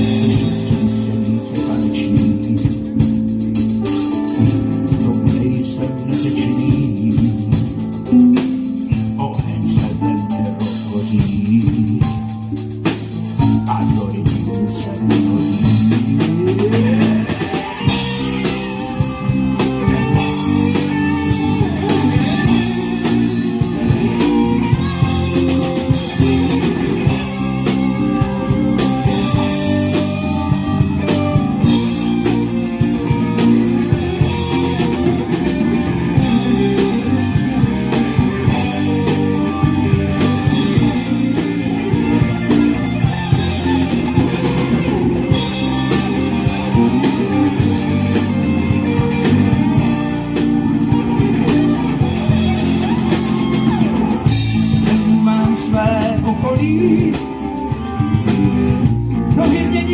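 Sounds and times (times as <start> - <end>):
bass guitar: 0.0 - 59.9
drum kit: 0.0 - 59.9
electric guitars: 0.0 - 59.9
keyboard: 0.0 - 59.9.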